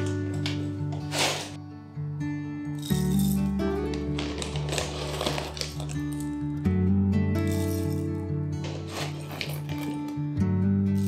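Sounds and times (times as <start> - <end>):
background music with held notes: 0.0 - 11.0
coffee beans rattling into grinder: 4.0 - 6.4, 7.5 - 8.0, 8.6 - 10.1.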